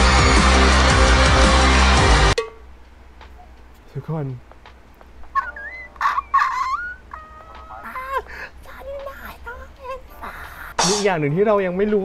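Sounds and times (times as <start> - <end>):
person squealing excitedly: 5.4 - 9.3.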